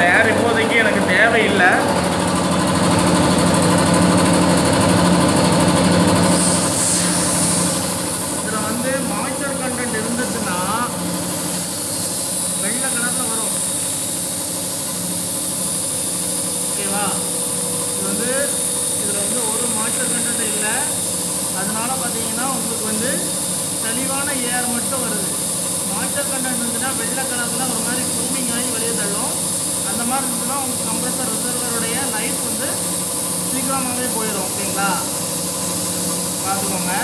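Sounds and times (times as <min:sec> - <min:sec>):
air compressor humming: 0:00.0 - 0:37.0.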